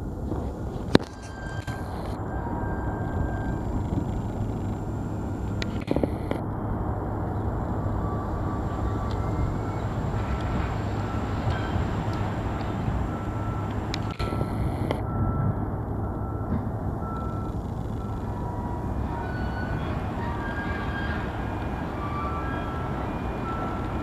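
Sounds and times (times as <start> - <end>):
freight train rumble on bridge: 0.0 - 24.0.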